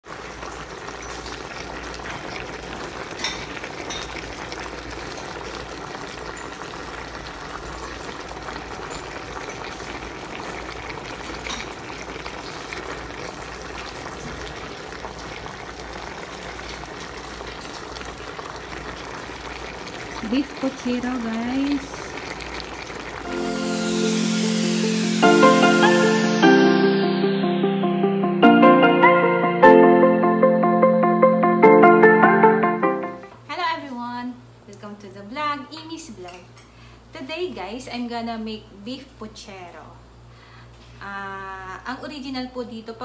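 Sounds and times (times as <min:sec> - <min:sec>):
stew bubbling in a pot: 0:00.0 - 0:23.3.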